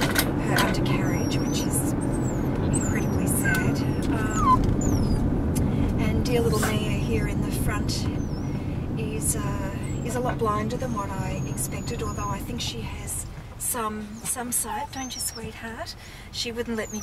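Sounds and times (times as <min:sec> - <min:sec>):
car engine and road noise: 0:00.0 - 0:17.0
small dog whining: 0:01.1 - 0:05.3, 0:14.1 - 0:15.6.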